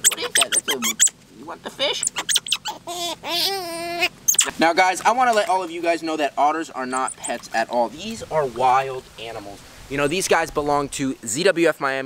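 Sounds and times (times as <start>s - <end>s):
otter pups squealing: 0.0s - 1.2s, 1.8s - 4.6s, 6.8s - 7.7s.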